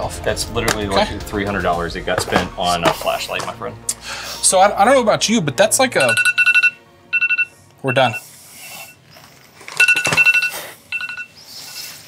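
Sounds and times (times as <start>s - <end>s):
phone timer alarm trills: 6.0s - 9.0s, 9.8s - 12.0s.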